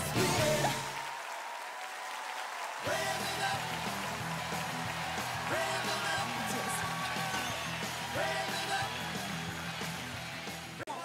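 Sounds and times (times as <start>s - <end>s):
music: 0.0s - 1.1s, 2.6s - 11.0s
audience clapping: 0.0s - 11.0s
crowd voices: 2.9s - 11.0s.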